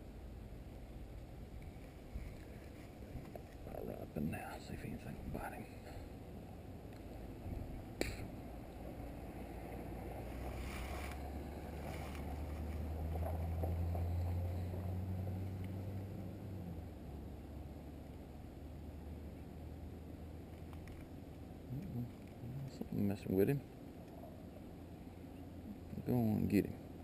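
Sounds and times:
outdoor background noise: 0.0 - 27.0.

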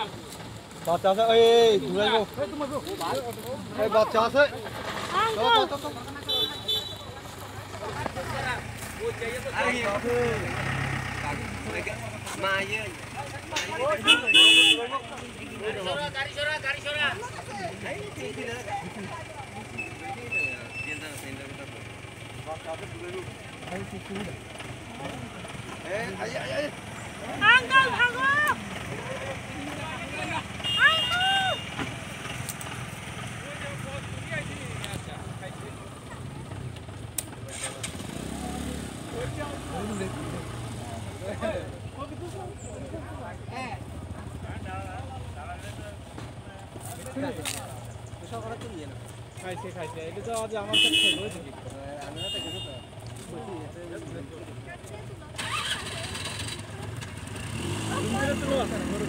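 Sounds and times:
people talking: 0.0 - 59.0
vehicle engine idling: 0.0 - 59.0.

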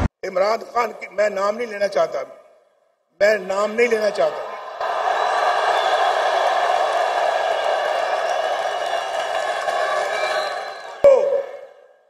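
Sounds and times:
crowd cheering and shouting: 4.1 - 11.7.

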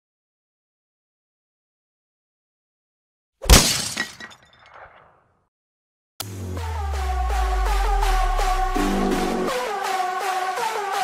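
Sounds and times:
glass shattering: 3.4 - 5.0.

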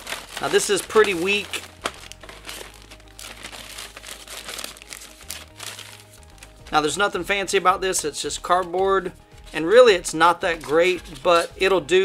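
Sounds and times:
cardboard pieces handled: 0.0 - 6.5
plastic bag crinkling: 0.0 - 6.8.

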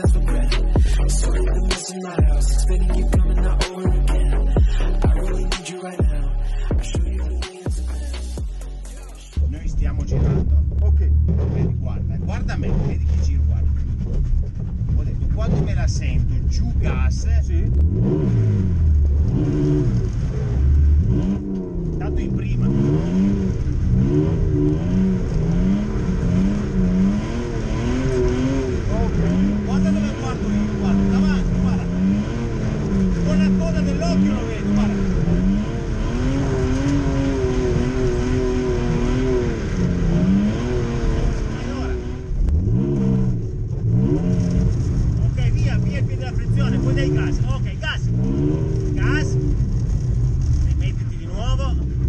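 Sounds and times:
car engine revving: 0.0 - 52.0.

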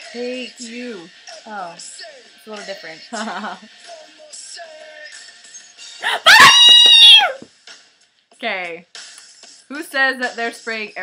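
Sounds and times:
faint music: 0.0 - 11.0
women squealing: 6.0 - 7.4.

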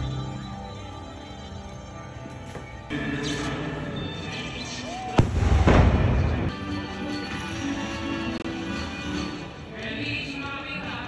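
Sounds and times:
music: 0.0 - 11.0
firework bang: 5.2 - 6.5.

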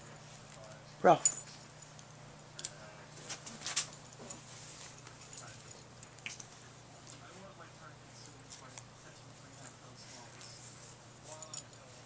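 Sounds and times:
metal collar tag jingling: 0.0 - 6.6, 11.2 - 11.9.

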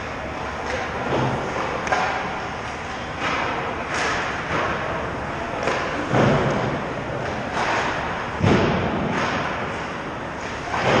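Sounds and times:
hockey stick and puck clatter: 0.3 - 11.0
skates scraping ice: 7.2 - 8.3.

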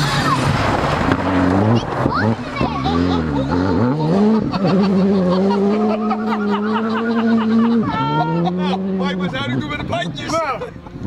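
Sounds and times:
rally car engine under hard throttle: 0.0 - 11.0.

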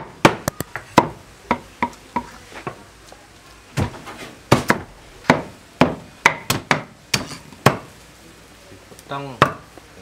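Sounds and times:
cleaver chopping on wooden block: 4.5 - 7.9.

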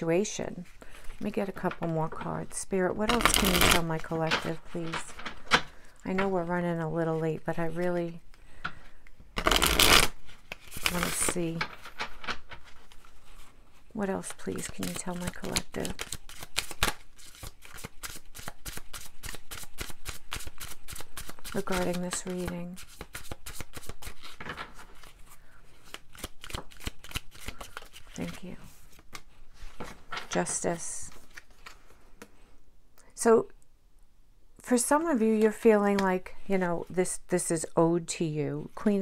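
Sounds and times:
cards handling noise: 8.3 - 32.4.

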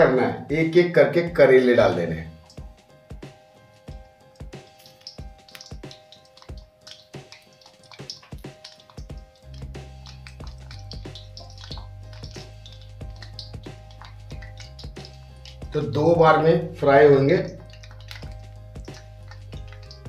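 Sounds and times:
soft background music: 0.0 - 20.0
oil crackling and popping: 2.4 - 20.0.

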